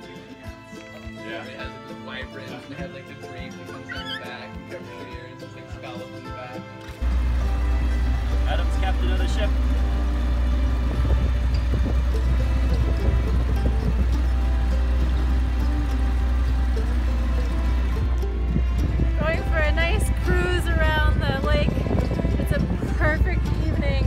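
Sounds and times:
background music: 0:00.0 - 0:24.0
motorboat engine rumble: 0:06.9 - 0:24.0.

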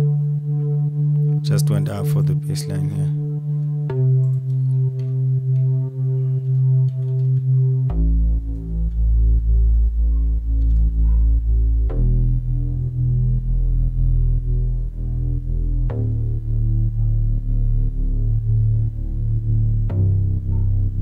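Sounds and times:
pulsing synth bass line: 0:07.5 - 0:21.0.

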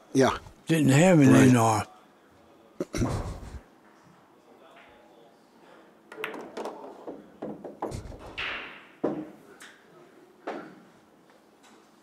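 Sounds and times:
pool balls clacking: 0:06.1 - 0:09.4.

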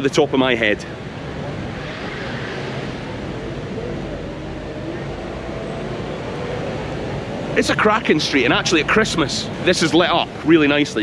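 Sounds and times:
distant voices murmuring: 0:00.0 - 0:11.0
road traffic hum: 0:00.0 - 0:11.0.

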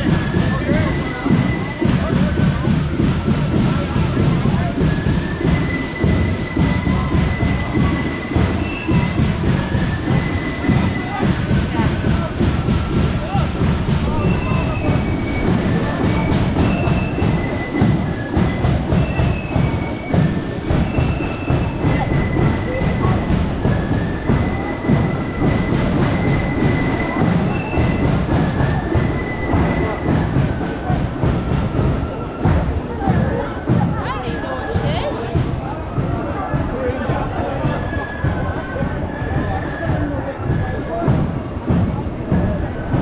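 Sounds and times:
faint flute melody: 0:00.0 - 0:43.0.

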